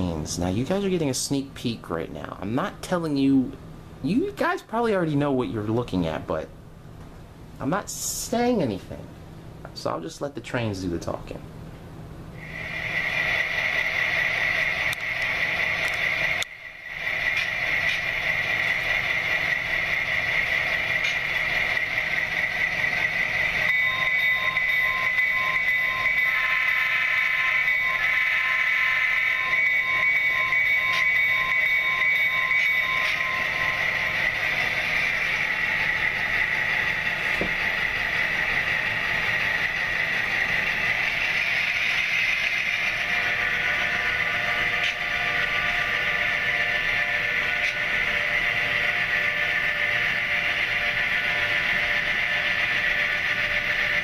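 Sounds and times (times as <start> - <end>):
locomotive bell ringing: 13.0 - 54.0.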